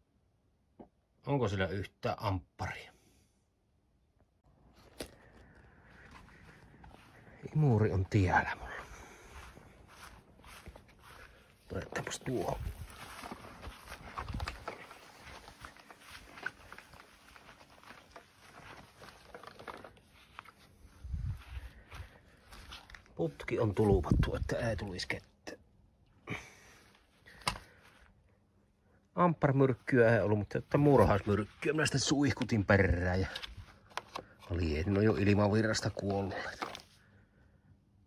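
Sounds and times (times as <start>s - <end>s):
faint footsteps on grass: 4.7s - 25.2s, 29.6s - 37.0s.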